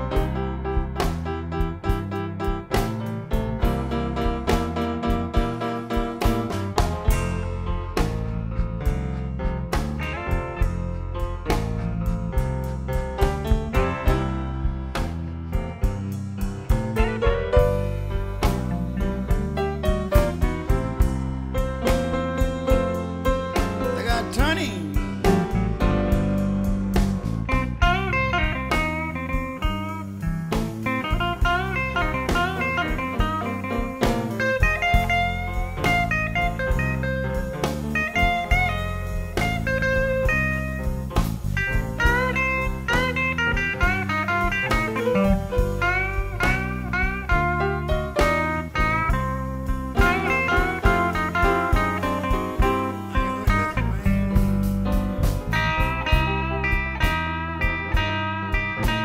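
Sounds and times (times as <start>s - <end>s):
bass: 0.0s - 59.0s
blues guitar solo: 0.0s - 59.0s
drums keeping a beat: 0.0s - 59.0s
piano: 0.0s - 59.0s.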